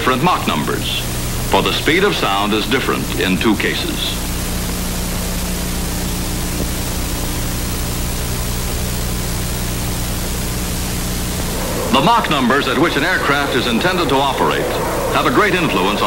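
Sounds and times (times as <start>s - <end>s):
film soundtrack hiss: 0.0s - 16.0s
low even hum: 10.0s - 16.0s.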